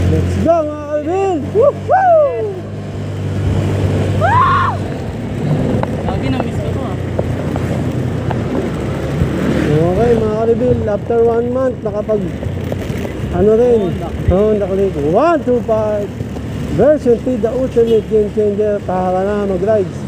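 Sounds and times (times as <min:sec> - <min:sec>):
road and wind noise: 0:00.0 - 0:20.0
scooter engine running: 0:02.4 - 0:19.4.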